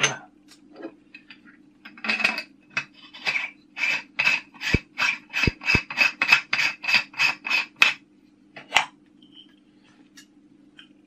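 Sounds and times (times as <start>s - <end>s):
metal screw threads rasping: 3.2s - 7.7s.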